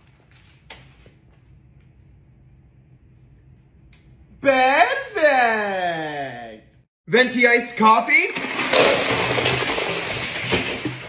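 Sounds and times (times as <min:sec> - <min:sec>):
ice cubes clattering: 0:08.3 - 0:11.0.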